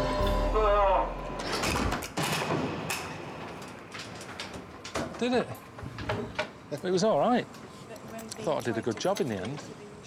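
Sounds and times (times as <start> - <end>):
low machine hum: 0.0 - 1.6.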